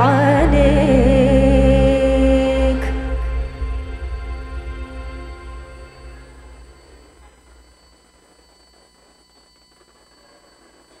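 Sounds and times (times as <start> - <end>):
music: 0.0 - 7.8
faint low hum: 0.0 - 11.0.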